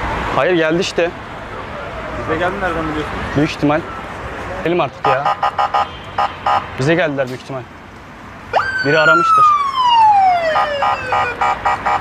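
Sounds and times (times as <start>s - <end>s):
siren wailing and pulsing: 8.5s - 12.0s.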